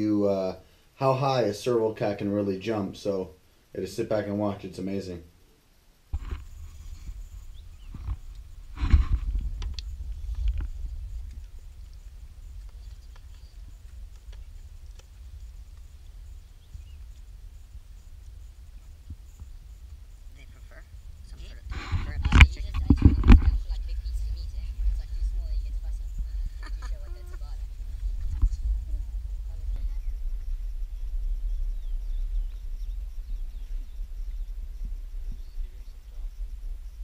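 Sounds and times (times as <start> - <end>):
rustling: 5.5 - 33.8
low rumble on microphone: 6.1 - 37.0
sharp knocks with thumps: 6.2 - 7.2, 21.4 - 23.7.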